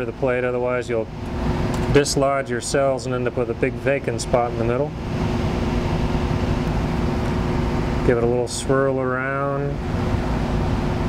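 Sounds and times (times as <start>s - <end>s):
ventilation fan humming: 0.0s - 11.0s.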